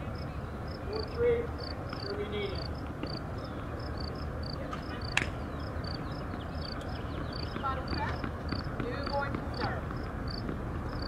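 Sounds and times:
low outdoor background: 0:00.0 - 0:11.0
high-pitched cricket-like chirping: 0:00.1 - 0:03.2, 0:03.8 - 0:05.2.

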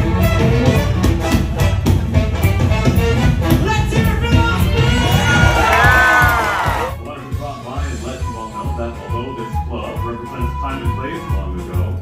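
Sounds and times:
upbeat stage music: 0:00.0 - 0:12.0
audience cheering and whooping: 0:04.7 - 0:07.0.

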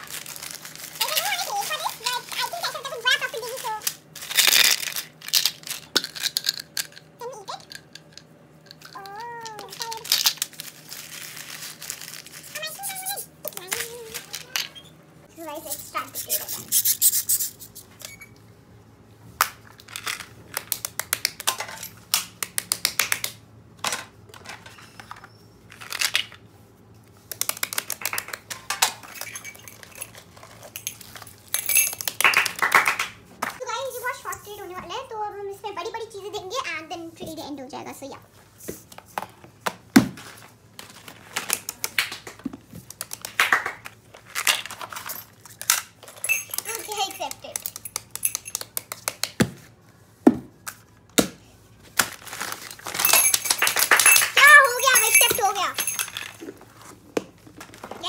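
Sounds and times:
plastic bag crinkling: 0:00.0 - 0:06.9, 0:08.8 - 0:14.6, 0:52.0 - 0:55.3.

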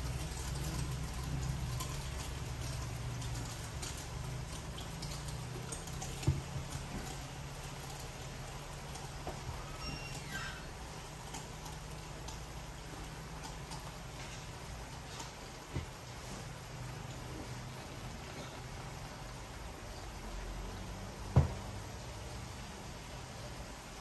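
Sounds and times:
water dripping into a basin: 0:00.0 - 0:24.0.

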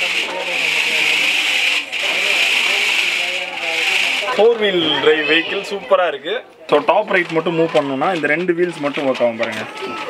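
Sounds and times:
toy car electric motor whining: 0:00.0 - 0:04.6.

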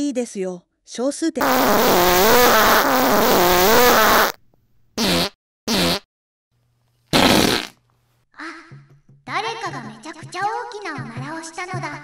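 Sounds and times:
loud fart sound effect: 0:01.4 - 0:04.4, 0:05.0 - 0:06.1, 0:07.1 - 0:07.8.

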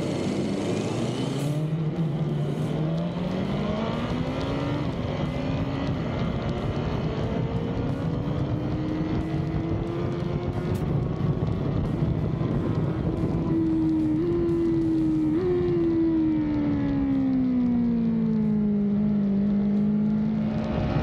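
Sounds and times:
motorcycle engine accelerating: 0:00.0 - 0:21.0
wind rush on microphone: 0:04.7 - 0:18.1, 0:20.3 - 0:21.0.

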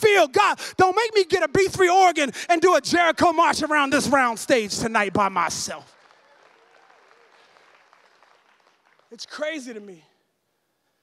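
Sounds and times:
faint applause: 0:05.9 - 0:09.4.

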